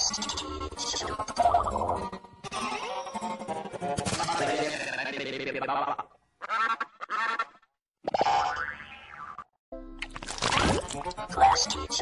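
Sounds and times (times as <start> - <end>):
warbling cartoon sound effects: 4.0 - 6.0.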